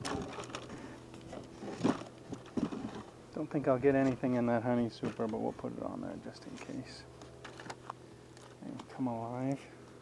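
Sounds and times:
knocks and rustles of wooden hive box: 0.0 - 3.2, 4.9 - 5.6
honeybees humming: 0.0 - 10.0.

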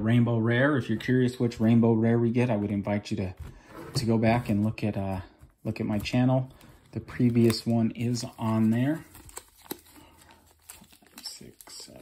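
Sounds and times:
foil wrappers crinkling: 5.9 - 12.0.

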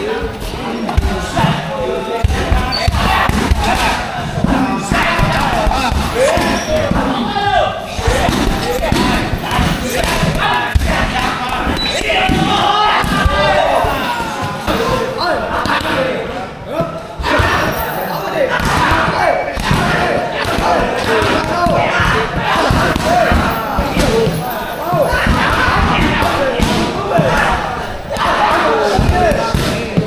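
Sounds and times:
people talking: 0.0 - 30.0.

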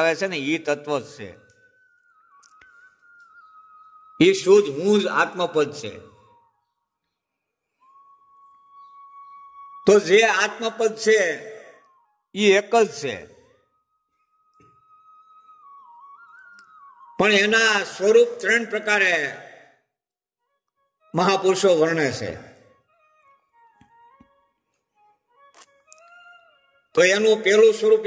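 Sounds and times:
faint high whistle-like tone: 1.0 - 10.6, 13.4 - 18.2.

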